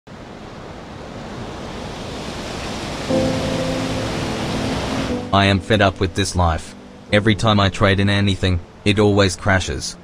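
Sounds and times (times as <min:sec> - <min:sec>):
rushing wind-like noise: 0:00.1 - 0:05.3
low sustained music chord: 0:03.1 - 0:10.0.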